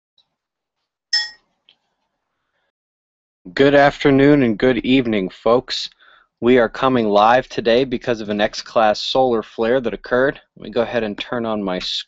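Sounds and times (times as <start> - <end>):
bright electronic chime: 1.2 - 1.4.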